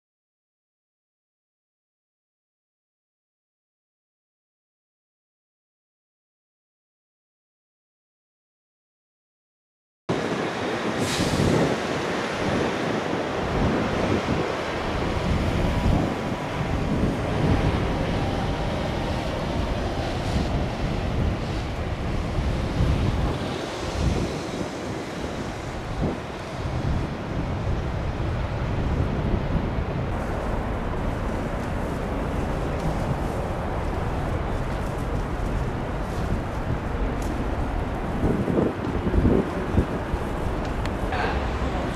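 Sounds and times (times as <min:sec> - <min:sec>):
distant traffic rumble: 0:10.1 - 0:41.9
wind buffeting microphone: 0:10.1 - 0:41.9.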